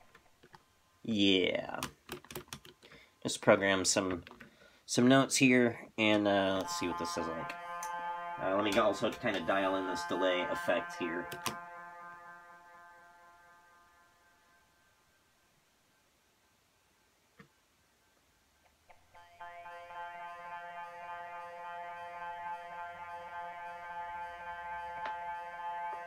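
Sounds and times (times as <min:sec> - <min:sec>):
synthesizer tone: 0:06.2 - 0:14.8, 0:19.2 - 0:26.0
held synth tone: 0:06.2 - 0:15.1, 0:19.2 - 0:26.0.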